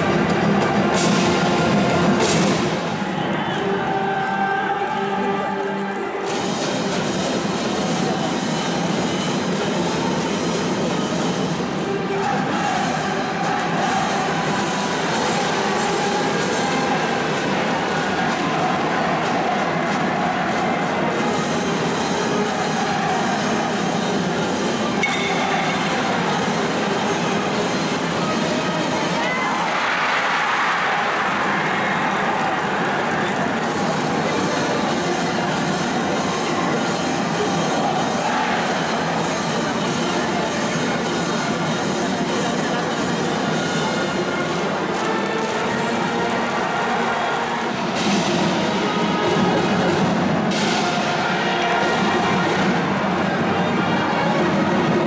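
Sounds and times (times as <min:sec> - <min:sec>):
students chanting and cheering: 0:00.0 - 0:09.0, 0:11.9 - 0:41.0, 0:42.3 - 0:55.0.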